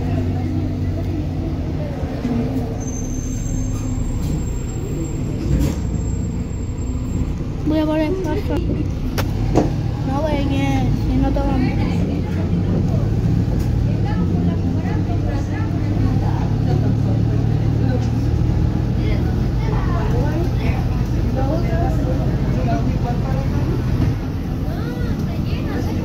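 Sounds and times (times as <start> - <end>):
bus engine and road drone: 0.0 - 26.0.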